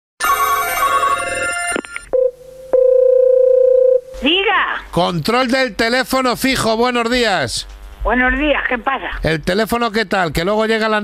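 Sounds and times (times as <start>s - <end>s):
telephone bell ringing: 0.2s - 4.0s.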